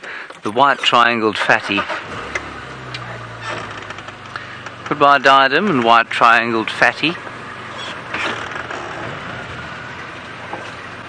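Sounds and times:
vehicle engine humming: 1.0s - 11.0s.

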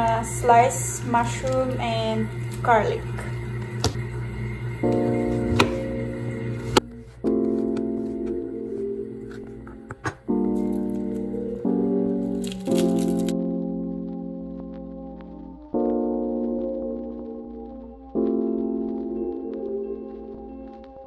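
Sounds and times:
slow keyboard chords: 0.0s - 21.0s
knife tapping cutting board: 5.5s - 5.8s.

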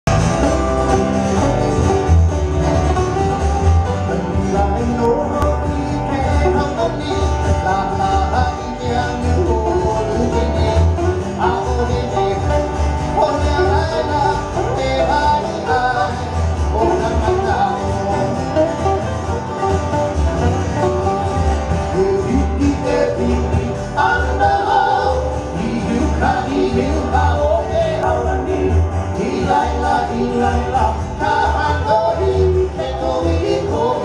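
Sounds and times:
acoustic guitars strumming and picking: 0.1s - 34.0s
low bass line: 0.1s - 34.0s
man singing: 4.0s - 18.8s, 20.8s - 34.0s.

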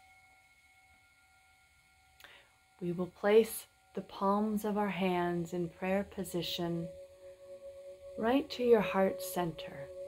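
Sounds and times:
faint steady ringing tone: 0.0s - 10.0s.

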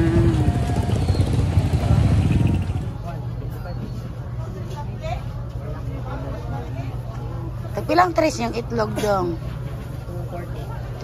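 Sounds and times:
motorcycle engine rumbling: 0.0s - 4.4s.

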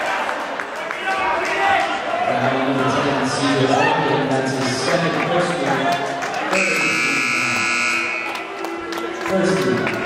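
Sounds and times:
scoreboard horn buzzing: 6.5s - 8.4s.

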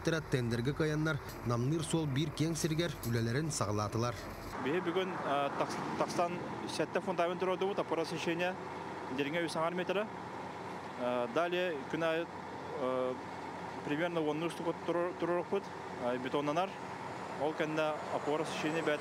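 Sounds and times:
truck engine idling: 0.0s - 19.0s.

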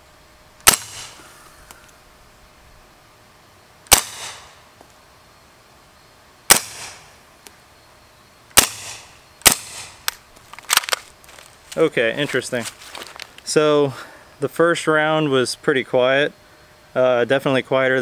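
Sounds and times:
suppressed gunshots: 0.6s - 1.2s, 3.9s - 4.6s, 6.5s - 7.1s, 8.6s - 10.2s.

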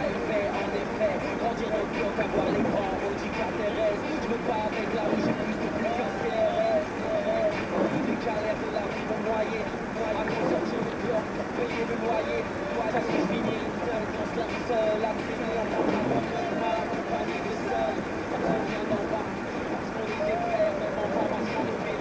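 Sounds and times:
car cabin noise: 0.0s - 22.0s
people talking: 0.0s - 22.0s.

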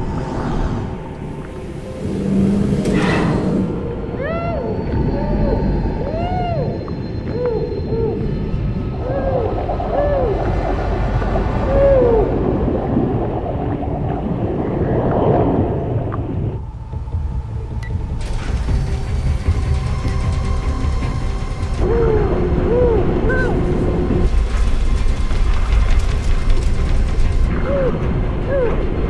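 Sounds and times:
low underwater rumble: 3.7s - 18.6s
muffled underwater cries of woman: 4.1s - 8.2s, 9.0s - 10.7s, 11.6s - 12.6s, 21.8s - 23.6s
bubbling: 8.9s - 16.6s.

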